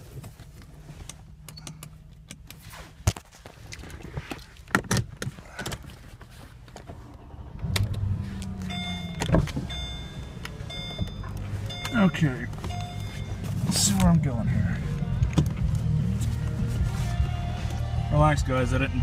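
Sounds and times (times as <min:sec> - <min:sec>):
power seat motor humming: 0:06.8 - 0:18.1
electronic warning chime: 0:08.6 - 0:14.0.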